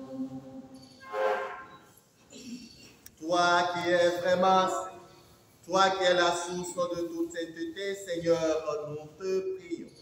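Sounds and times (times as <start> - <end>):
church choir singing: 0.0 - 1.8.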